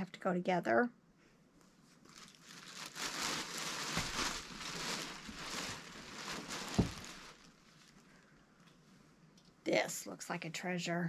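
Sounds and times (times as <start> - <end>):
bag crinkling and rustling: 1.9 - 8.2
soft thump: 6.7 - 7.1.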